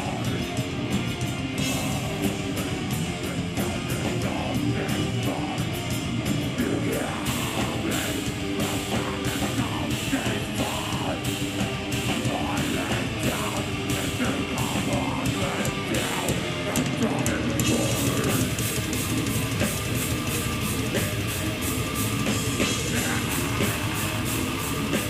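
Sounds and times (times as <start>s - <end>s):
distorted electric guitars: 0.0s - 25.0s
drums and cymbals: 0.0s - 25.0s.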